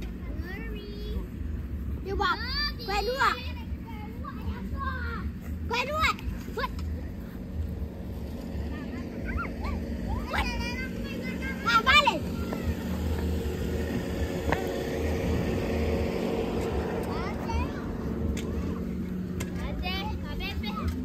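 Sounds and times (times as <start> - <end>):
children shouting and squealing: 0.0 - 21.0
steady low hum: 0.0 - 21.0.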